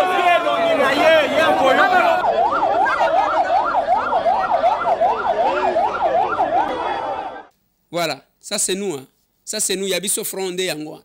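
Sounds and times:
crowd noise: 0.0s - 7.5s
siren yelping: 0.0s - 7.5s.

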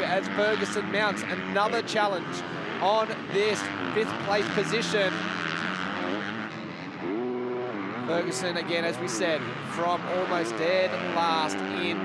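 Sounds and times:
motocross engines running: 0.0s - 12.0s.

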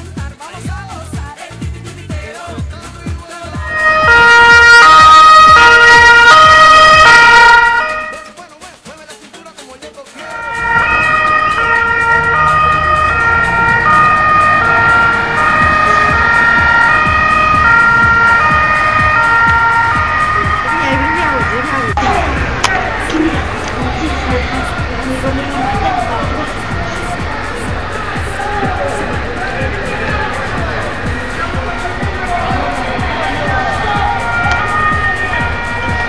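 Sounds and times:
police two-tone siren: 3.6s - 8.4s, 10.2s - 22.0s, 34.2s - 36.0s.

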